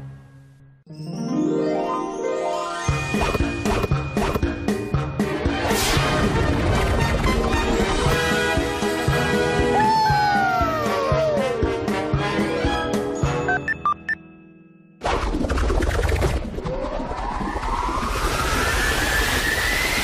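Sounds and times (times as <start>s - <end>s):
cartoon music with beat: 2.8s - 14.2s.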